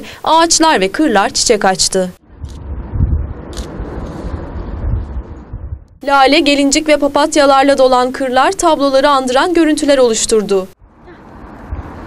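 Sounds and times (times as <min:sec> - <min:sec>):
wind buffeting microphone: 0:02.2 - 0:06.1
rustle: 0:03.3 - 0:05.5.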